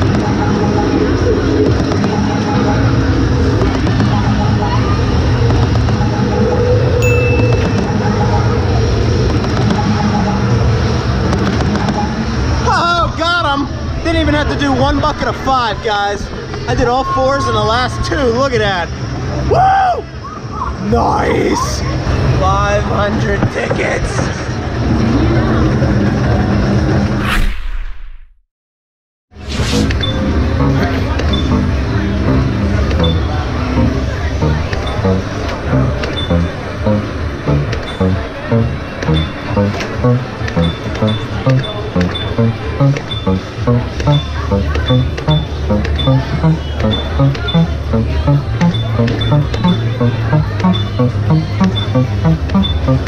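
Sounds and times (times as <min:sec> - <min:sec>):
arcade machine sounds: 0:00.0 - 0:19.0, 0:29.7 - 0:53.0
short high electronic beep: 0:07.0 - 0:08.1, 0:44.9 - 0:47.8
electronic game music: 0:07.0 - 0:08.4, 0:30.0 - 0:53.0
whoosh: 0:27.0 - 0:28.4, 0:29.4 - 0:30.1.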